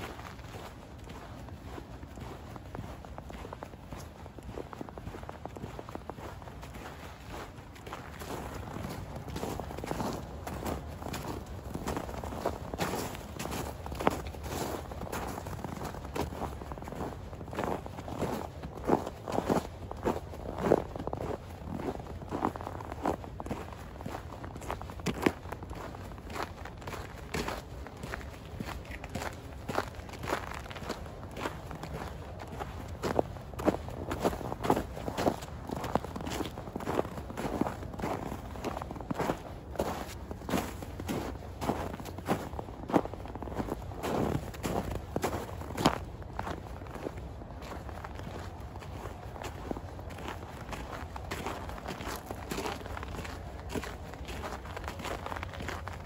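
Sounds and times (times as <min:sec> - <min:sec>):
footsteps crunching in snow: 0:00.0 - 0:56.0.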